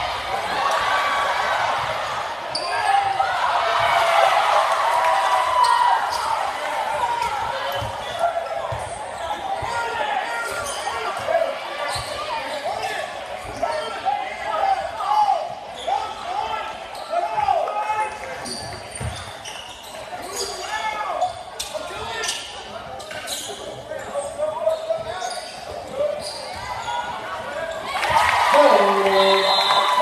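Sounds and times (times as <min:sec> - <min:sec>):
spectators shouting and chattering: 0:00.0 - 0:30.0.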